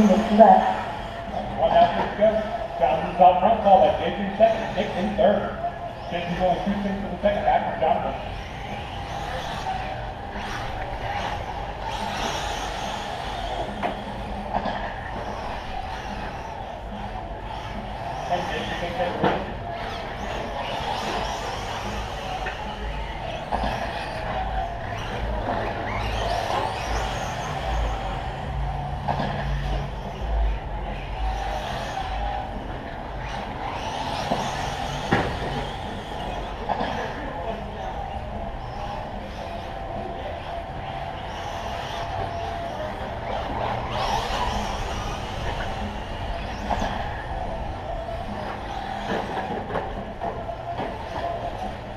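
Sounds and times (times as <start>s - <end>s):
small motors racing: 0.0s - 51.9s.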